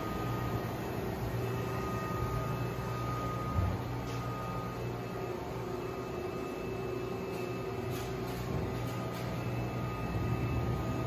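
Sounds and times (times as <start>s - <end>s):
machinery and ventilation hum: 0.0s - 11.0s.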